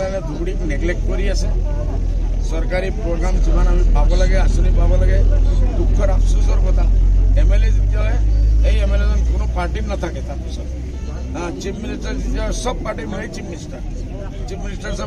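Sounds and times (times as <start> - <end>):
heavy low rumble: 0.0 - 12.5
man speaking: 0.0 - 15.0.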